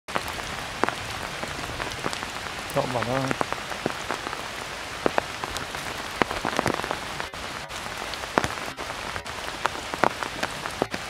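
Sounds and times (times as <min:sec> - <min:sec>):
heavy rain falling: 0:00.1 - 0:11.0.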